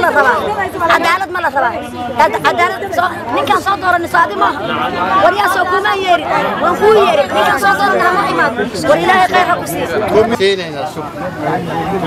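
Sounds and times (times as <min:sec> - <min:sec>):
woman speaking heatedly: 0:00.0 - 0:09.6
crowd voices overlapping: 0:00.0 - 0:12.0.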